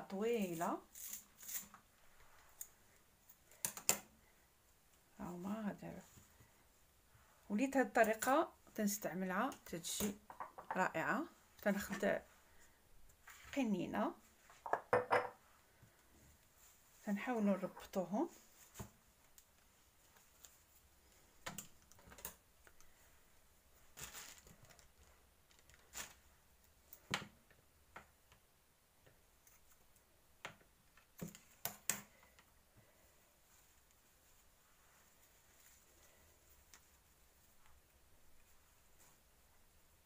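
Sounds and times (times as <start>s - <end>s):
faint rustles: 32.1s - 40.0s.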